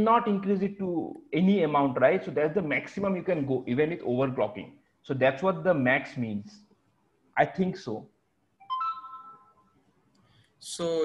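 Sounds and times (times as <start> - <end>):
electronic notification chime: 8.6 - 9.7.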